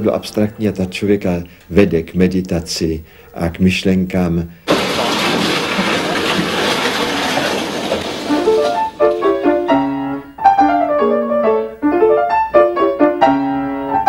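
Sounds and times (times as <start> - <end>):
piano music: 7.5 - 14.0.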